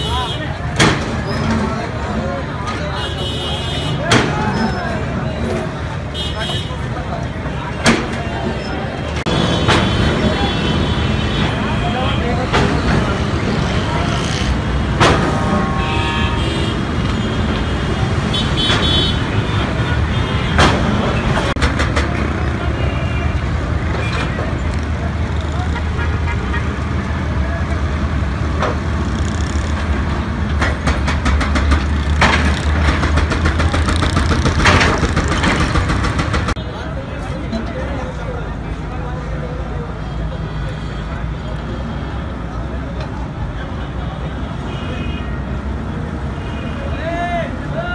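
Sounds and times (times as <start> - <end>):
vehicle horns tooting: 0.0 - 0.6, 2.9 - 4.8, 6.1 - 6.9, 15.1 - 21.6, 44.2 - 45.4
crowd of men talking: 0.0 - 15.9, 36.5 - 47.9
excavator diesel engines running: 6.7 - 44.6.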